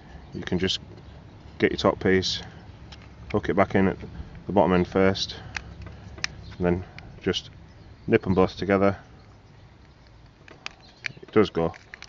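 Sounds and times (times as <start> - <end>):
soft handling: 8.9 - 12.0.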